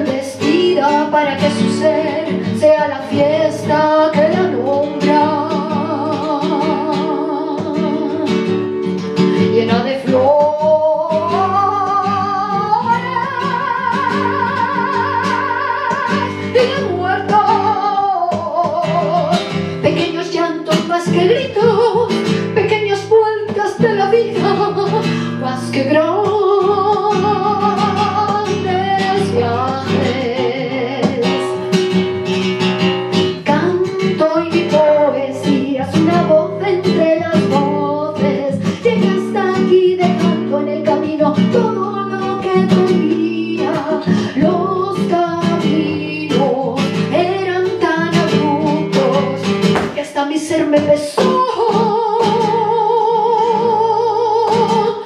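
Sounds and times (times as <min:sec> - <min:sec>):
acoustic guitar strummed and picked: 0:00.0 - 0:55.0
woman singing: 0:00.0 - 0:55.0.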